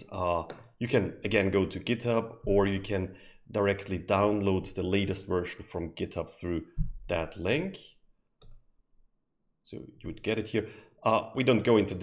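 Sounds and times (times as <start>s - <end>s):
computer mouse click: 8.4s - 8.7s.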